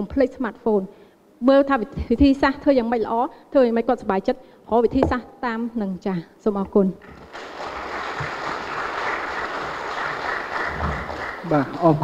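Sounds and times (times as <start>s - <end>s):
audience applauding: 7.1s - 12.0s.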